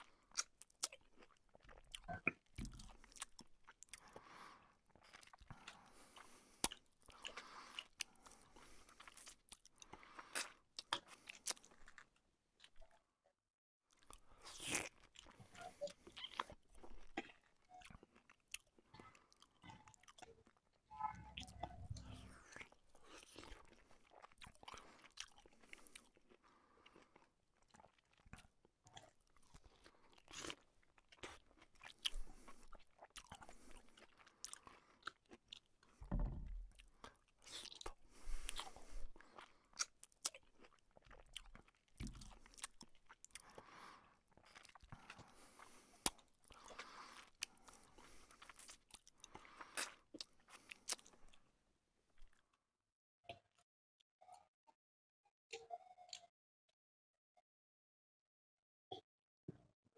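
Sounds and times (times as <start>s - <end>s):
chewing and biting bread: 0.0s - 13.1s, 13.9s - 20.7s, 21.4s - 51.5s.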